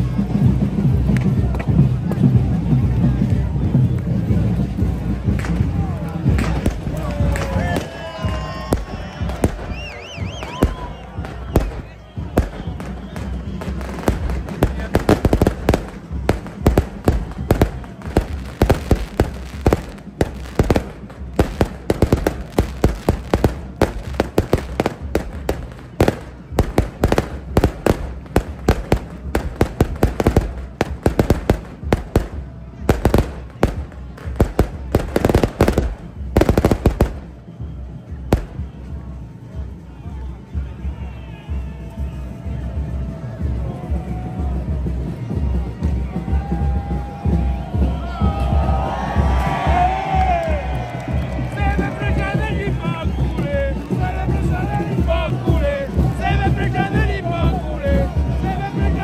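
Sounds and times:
fireworks bangs and crackles: 0.0 - 39.7, 44.2 - 59.0.

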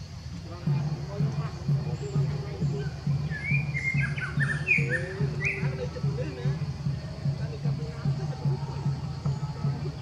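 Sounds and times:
low pulsing beat: 0.0 - 10.0
wild birds chirping: 0.0 - 10.0.

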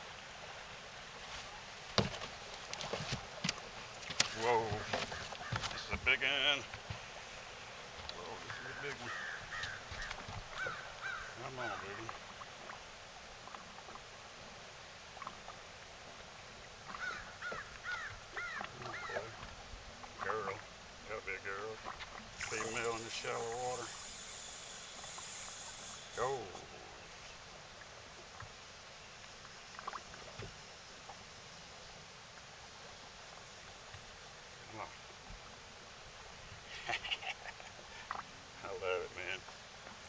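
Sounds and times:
faint steady hiss: 0.0 - 40.0
bird calling: 4.5 - 6.6, 8.3 - 12.2, 16.9 - 19.4.

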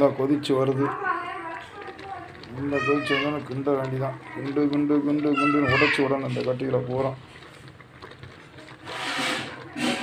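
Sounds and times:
child talking high-pitched: 5.3 - 6.1.

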